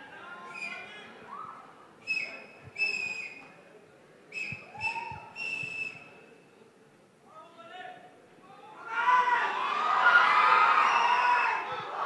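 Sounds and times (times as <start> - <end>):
faint hall noise: 0.0 - 12.0
shrill whistle: 0.5 - 0.9, 2.0 - 3.5, 4.3 - 6.2.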